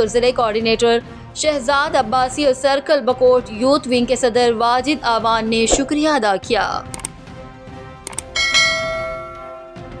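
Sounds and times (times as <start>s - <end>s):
mouse clicks: 5.7s - 6.0s, 6.9s - 7.1s, 8.1s - 8.3s
bright bell ding: 8.4s - 9.8s.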